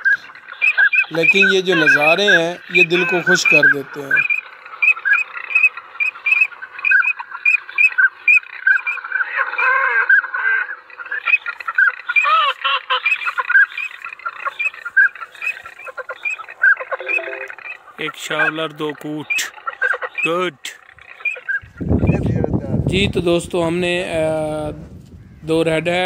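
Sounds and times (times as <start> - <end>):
short high duck calls: 0.0 - 18.6
lower duck calls: 0.0 - 22.2.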